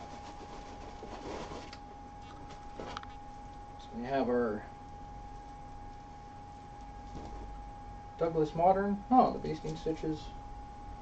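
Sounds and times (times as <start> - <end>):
paper and fabric rustling: 0.0 - 1.8.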